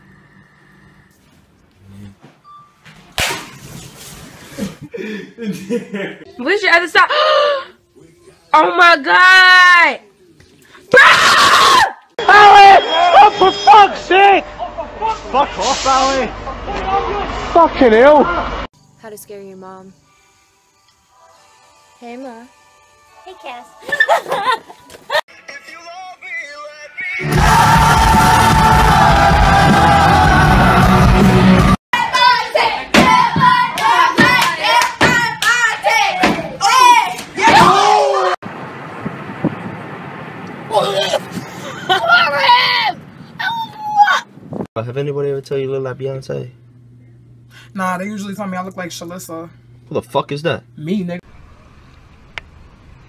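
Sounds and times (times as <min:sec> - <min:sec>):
person screaming: 0:10.9 - 0:12.7.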